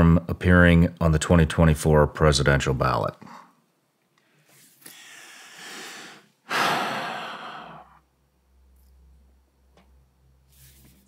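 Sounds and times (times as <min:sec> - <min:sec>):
breath in: 0:04.2 - 0:08.1
man sighing: 0:04.9 - 0:08.1.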